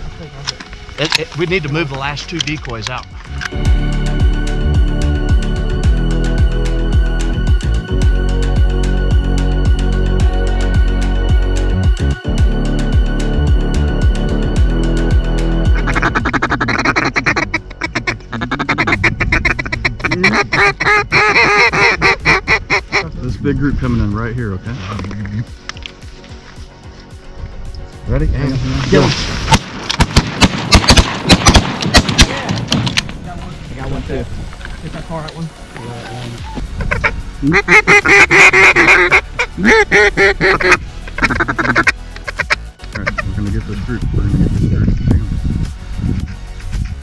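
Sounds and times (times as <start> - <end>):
background music: 0.0 - 47.0
loud honking waterfowl call: 15.7 - 23.0, 36.0 - 43.2
ducks quacking: 15.7 - 23.1, 35.8 - 43.4.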